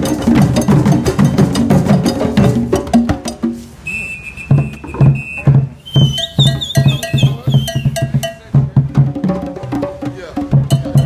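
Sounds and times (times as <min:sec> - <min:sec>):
djembe hand drums beating: 0:00.0 - 0:03.7, 0:04.5 - 0:11.0
high whistle warbling: 0:03.8 - 0:08.1.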